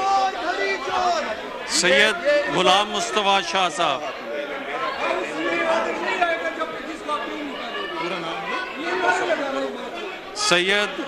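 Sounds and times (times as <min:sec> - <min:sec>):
many people chattering: 0:00.0 - 0:11.0.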